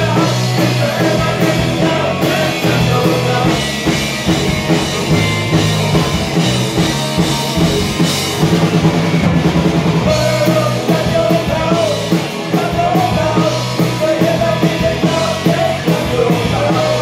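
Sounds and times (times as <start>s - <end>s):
rock band playing: 0.0s - 17.0s
drum hits: 1.4s - 13.2s.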